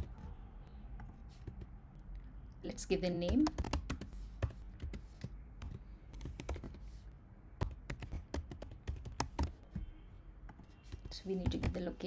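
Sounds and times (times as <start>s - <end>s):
computer keyboard typing: 3.2s - 6.8s, 7.6s - 9.9s, 10.5s - 12.0s.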